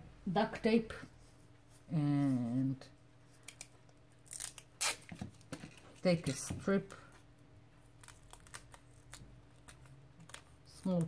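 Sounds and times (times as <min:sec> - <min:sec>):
sticky tape crackling: 0:03.5 - 0:06.4, 0:07.8 - 0:11.0
duct tape ripping off roll: 0:04.2 - 0:05.3.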